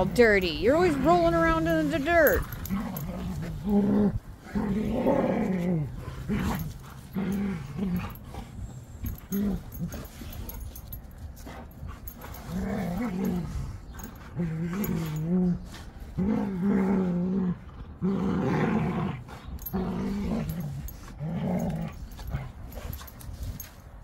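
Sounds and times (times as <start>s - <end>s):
dogs growling playfully: 0.0s - 23.8s.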